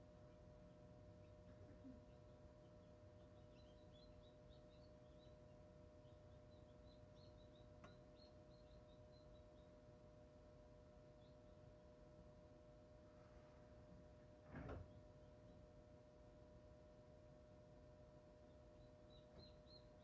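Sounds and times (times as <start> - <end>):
incubator fan hum: 0.0 - 20.0
chicks peeping: 0.1 - 10.1, 11.0 - 11.8, 18.4 - 20.0.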